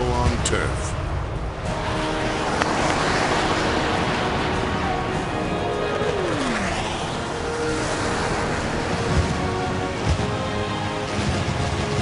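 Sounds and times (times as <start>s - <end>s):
background music: 0.0s - 12.0s
jet flyover: 0.0s - 12.0s.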